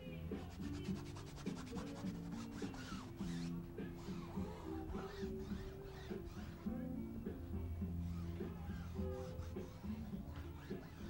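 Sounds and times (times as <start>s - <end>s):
chalk scratching on canvas: 0.3s - 6.7s, 8.0s - 11.0s.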